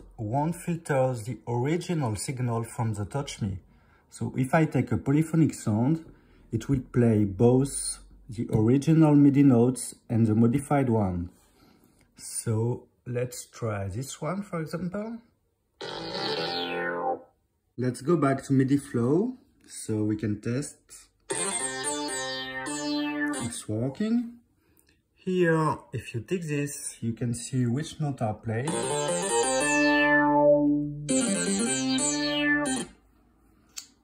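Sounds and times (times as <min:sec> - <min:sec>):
synth bass note: 0:15.8 - 0:17.2, 0:21.3 - 0:23.6, 0:28.7 - 0:33.0.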